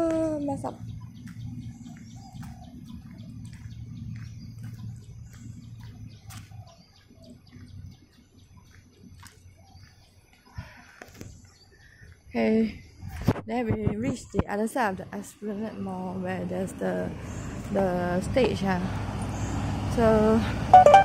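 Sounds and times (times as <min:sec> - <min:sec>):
birds chirping: 0:00.0 - 0:13.2, 0:14.0 - 0:21.0.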